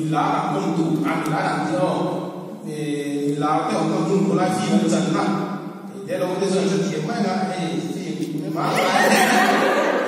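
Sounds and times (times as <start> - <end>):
man talking into a microphone: 0.0 - 9.8.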